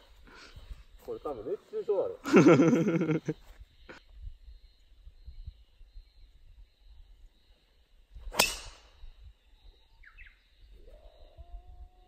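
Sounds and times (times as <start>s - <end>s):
golf driver striking ball: 8.3s - 8.8s.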